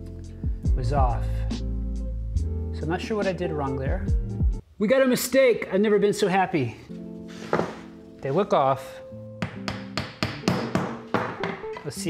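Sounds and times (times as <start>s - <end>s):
wooden mallet tapping wood: 9.4s - 11.9s.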